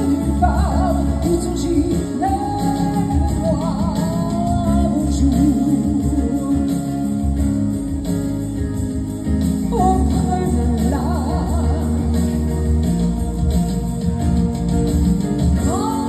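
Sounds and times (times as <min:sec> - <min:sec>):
woman singing into microphone: 0:00.0 - 0:07.5, 0:09.6 - 0:12.8, 0:15.6 - 0:16.0
instrumental accompaniment: 0:00.0 - 0:16.0.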